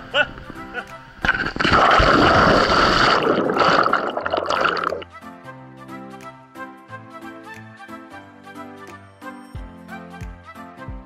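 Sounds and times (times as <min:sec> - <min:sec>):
background music: 0:00.0 - 0:11.0
churning bubbling water: 0:01.2 - 0:05.1
splash into water: 0:01.2 - 0:05.1.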